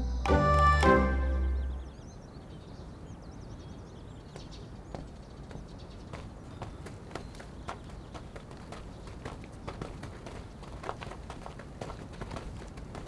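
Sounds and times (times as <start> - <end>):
birds chirping: 0.0 - 13.0
footsteps on gravel: 4.9 - 13.0.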